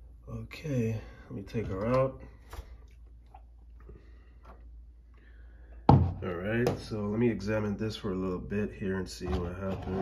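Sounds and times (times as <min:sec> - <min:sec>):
low steady hum: 0:00.0 - 0:10.0
knock on countertop: 0:05.9 - 0:06.8.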